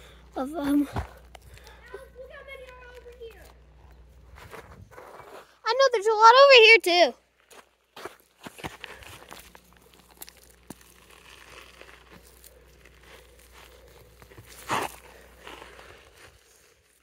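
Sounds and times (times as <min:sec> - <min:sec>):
steps on gravelly dirt: 0:00.0 - 0:17.0
weeds rustling and crunching: 0:08.6 - 0:17.0.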